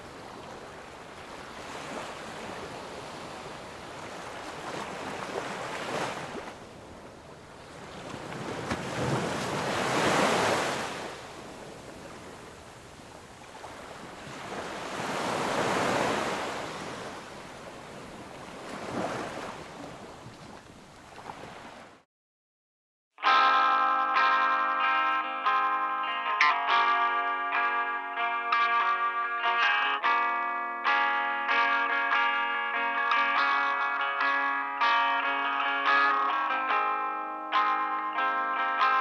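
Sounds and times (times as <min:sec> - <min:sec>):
waves washing on sandy beach: 0:00.0 - 0:22.0.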